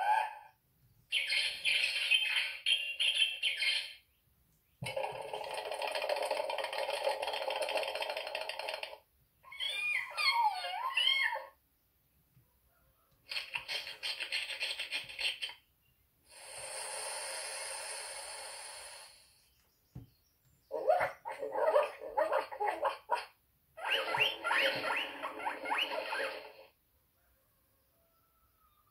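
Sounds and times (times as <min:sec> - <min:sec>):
quick squeaky calls: 0:09.4 - 0:11.6, 0:13.2 - 0:15.7, 0:23.8 - 0:26.7
rapid recorded animal calls: 0:13.2 - 0:15.6, 0:20.7 - 0:26.7
steady hiss: 0:16.3 - 0:19.4.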